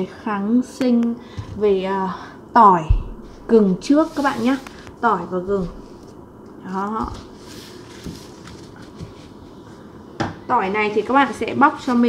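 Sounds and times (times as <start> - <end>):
light rustling of trays: 3.2 - 9.4.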